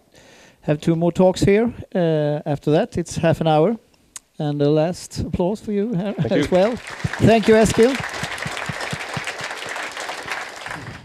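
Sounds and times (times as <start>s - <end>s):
audience applauding: 6.2s - 11.0s.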